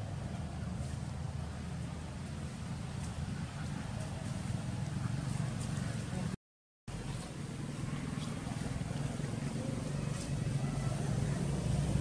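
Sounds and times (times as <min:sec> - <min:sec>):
road traffic engine rumble: 0:00.0 - 0:12.0.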